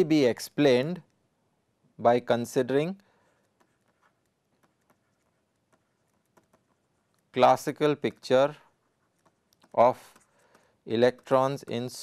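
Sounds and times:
stylus tapping on tablet screen: 3.3 - 7.4, 8.0 - 11.5.

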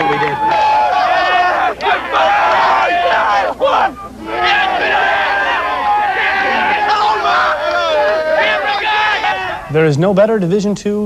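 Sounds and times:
crowd cheering and yelling: 0.0 - 9.8.

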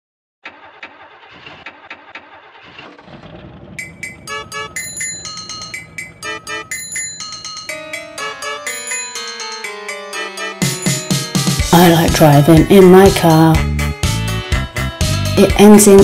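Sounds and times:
car engine cranking: 0.4 - 8.3
car engine rumbling: 0.4 - 8.4
music with chiming notes: 3.8 - 12.1.

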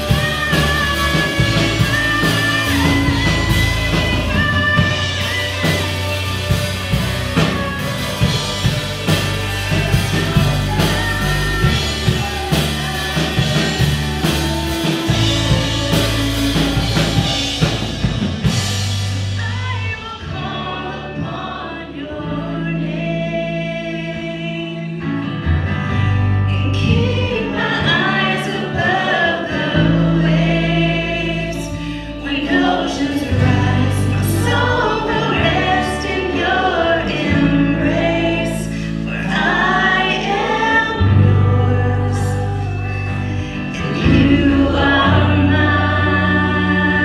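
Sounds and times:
drum kit hits: 0.0 - 19.9
voices singing together: 0.0 - 25.1, 26.7 - 47.0
drums: 0.0 - 47.0
electric guitar: 0.0 - 47.0
held low bass notes: 0.0 - 47.0
keyboard: 0.0 - 47.0.

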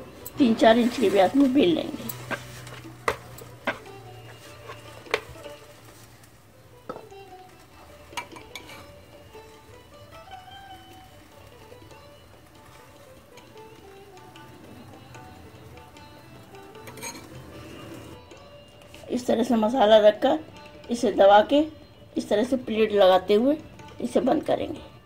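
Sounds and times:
quiet background music: 0.0 - 25.0.

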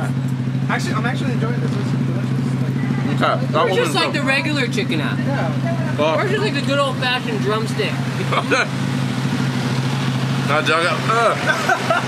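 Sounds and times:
engine idling: 0.0 - 12.0
man talking: 10.4 - 11.5.

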